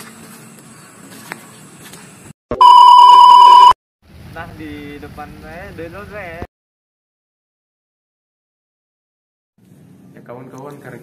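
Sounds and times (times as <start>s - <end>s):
electronic censor bleep: 2.5s - 3.8s.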